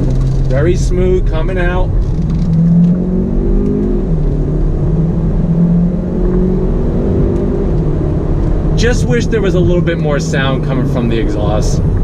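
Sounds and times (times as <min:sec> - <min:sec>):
car engine accelerating hard: 0:00.0 - 0:12.0
road and tyre noise: 0:00.0 - 0:12.0.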